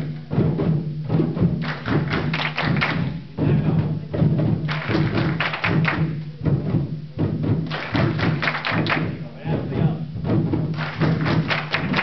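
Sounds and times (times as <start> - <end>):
group playing hand drums: 0.0 - 12.0.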